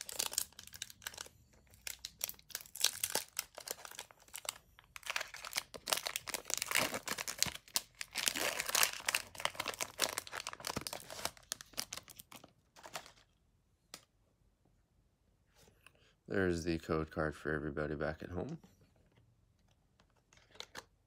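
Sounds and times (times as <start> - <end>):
foil wrapper crinkling and tearing: 0.0 - 13.2.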